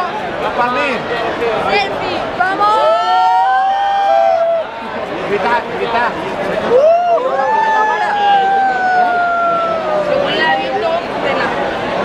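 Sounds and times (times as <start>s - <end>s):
group of people cheering: 2.6s - 4.9s, 6.6s - 10.7s.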